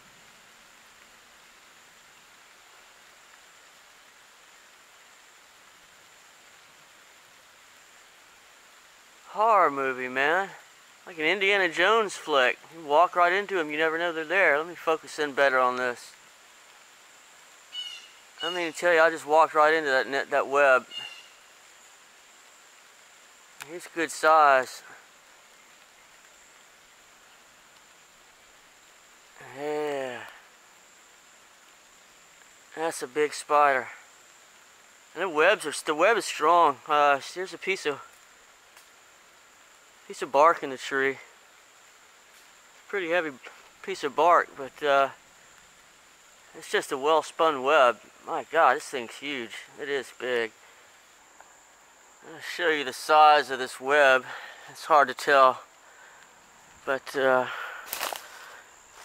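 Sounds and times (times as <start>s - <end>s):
outdoor background hiss: 0.0s - 59.0s.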